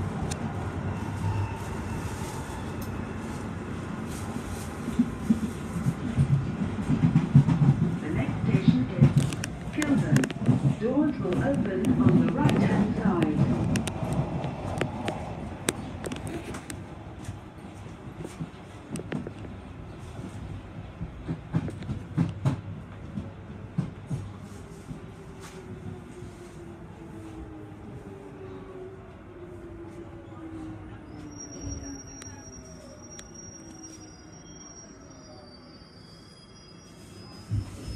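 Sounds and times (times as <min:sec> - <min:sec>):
train running rumble: 0:02.8 - 0:25.2.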